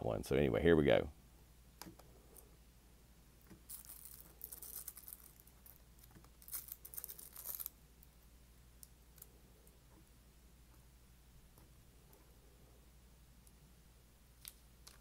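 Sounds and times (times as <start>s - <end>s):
record sleeves rustling: 3.5s - 7.8s.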